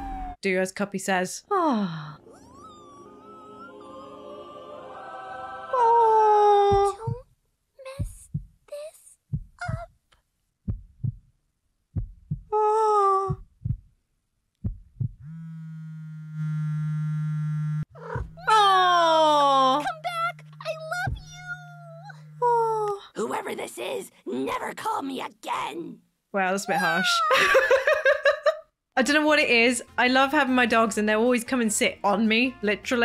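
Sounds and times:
cartoon voice squealing: 0:02.2 - 0:04.2, 0:26.7 - 0:27.4
phone buzzing: 0:15.2 - 0:17.8, 0:19.6 - 0:22.9.

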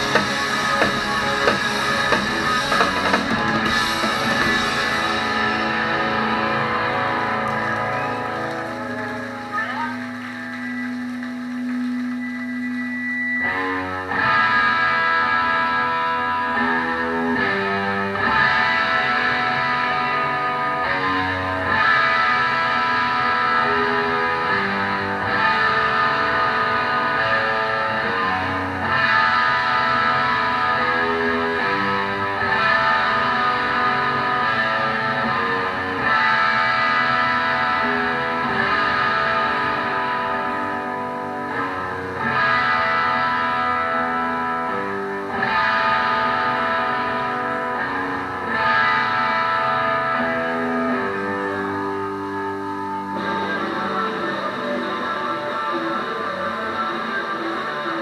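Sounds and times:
bass guitar: 0:00.0 - 0:58.0
distorted electric guitars: 0:00.0 - 0:58.0
punk band playing: 0:00.0 - 0:58.0.

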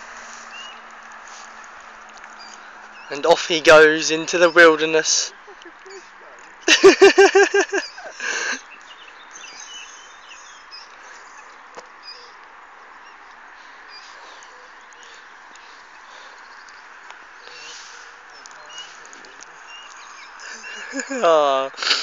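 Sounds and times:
birds calling: 0:00.0 - 0:22.0
steady outdoor hiss: 0:00.0 - 0:22.0.

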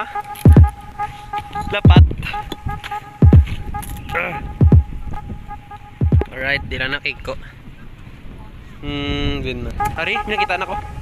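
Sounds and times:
dull low thumps: 0:00.5 - 0:00.8, 0:01.8 - 0:06.8.

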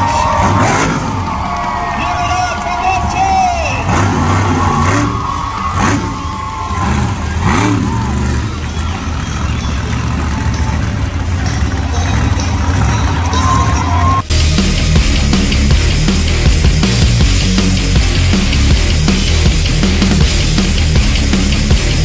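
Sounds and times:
monster truck engine: 0:00.0 - 0:22.0.

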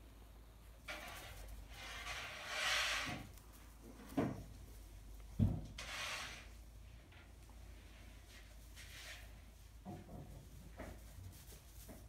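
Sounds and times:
rustling of straw: 0:10.5 - 0:12.0.

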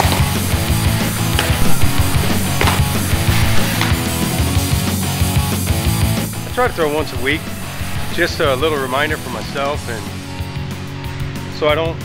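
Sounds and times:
distorted guitar: 0:00.0 - 0:11.5.

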